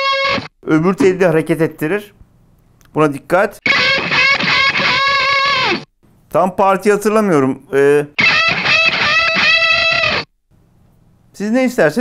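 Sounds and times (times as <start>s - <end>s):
electric guitar solo: 0.0s - 0.5s, 3.6s - 5.9s, 8.2s - 10.3s.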